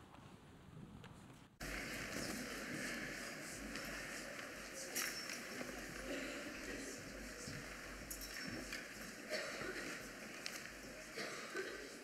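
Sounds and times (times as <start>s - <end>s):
faint murmuring voices: 1.6s - 12.0s.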